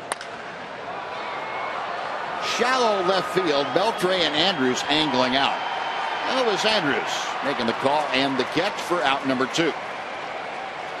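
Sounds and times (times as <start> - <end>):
bat cracking a baseball: 0.0 - 0.5
ballpark crowd noise: 0.0 - 11.0.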